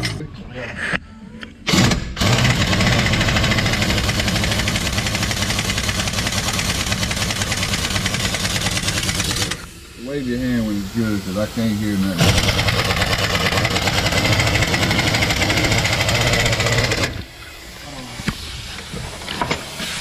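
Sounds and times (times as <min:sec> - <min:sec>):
pneumatic impact wrench hammering: 0:01.7 - 0:09.8, 0:12.2 - 0:17.3.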